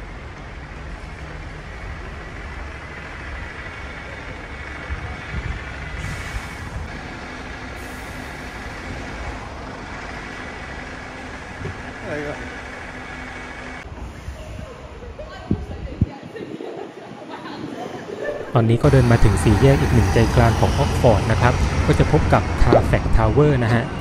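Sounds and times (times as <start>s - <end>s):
heavy vehicle engine running: 0.0s - 14.1s, 18.6s - 24.0s
street traffic: 0.0s - 16.1s, 17.2s - 24.0s.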